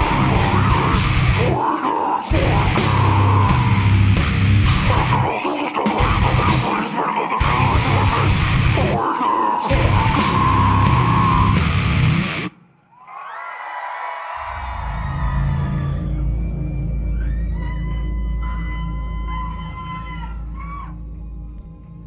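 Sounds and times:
deep bass drone: 0.0 - 1.7, 2.3 - 5.4, 6.1 - 6.8, 7.4 - 9.0, 9.7 - 12.5, 14.7 - 22.0
heavy metal song: 0.0 - 12.6.

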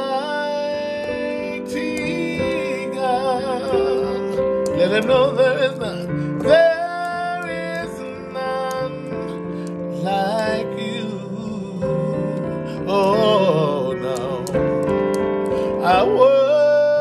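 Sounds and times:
man singing worship song: 0.0 - 14.8, 15.5 - 17.0.

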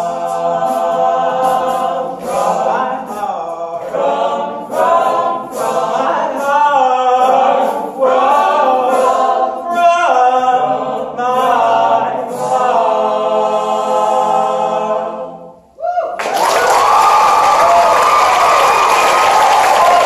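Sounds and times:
male group singing in harmony: 0.0 - 15.7.

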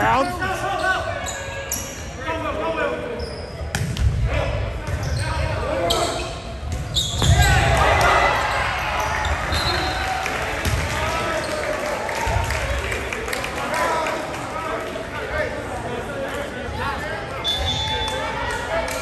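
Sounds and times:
sneakers squeaking: 0.0 - 2.1, 3.0 - 4.2, 4.8 - 7.7
people shouting and talking: 0.0 - 19.0.

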